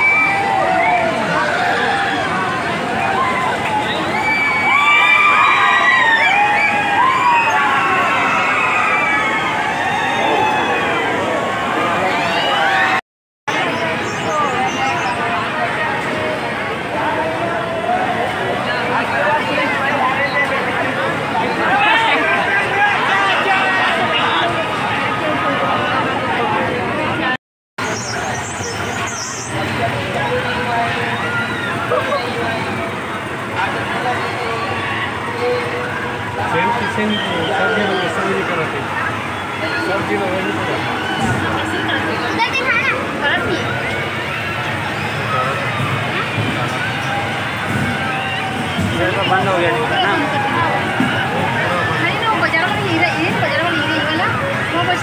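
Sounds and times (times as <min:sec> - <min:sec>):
riders shrieking and whooping: 0:00.0 - 0:13.0, 0:28.6 - 0:55.0
crowd hubbub: 0:00.0 - 0:55.0
machinery din: 0:27.8 - 0:55.0.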